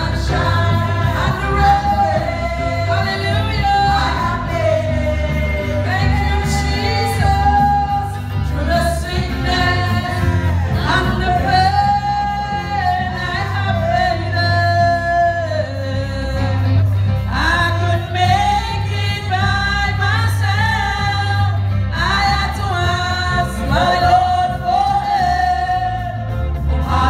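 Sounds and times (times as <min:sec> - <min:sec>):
live band with electric bass: 0:00.0 - 0:27.0
woman singing into microphone: 0:00.0 - 0:27.0.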